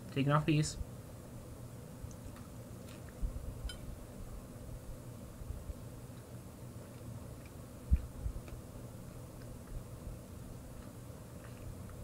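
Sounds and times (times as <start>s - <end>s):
chewing crispy crust: 2.2s - 3.2s, 5.9s - 12.0s.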